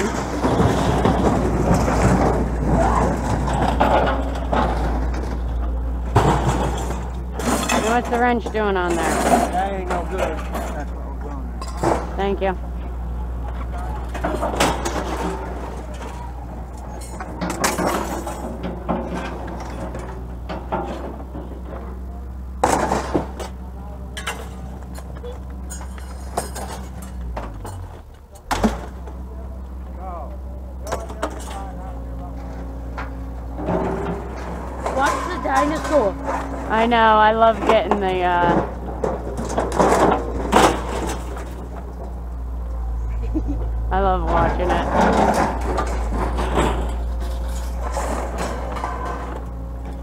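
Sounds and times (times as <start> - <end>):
low engine hum: 0.0 - 50.0
scrap metal clanking and crashing: 0.0 - 50.0.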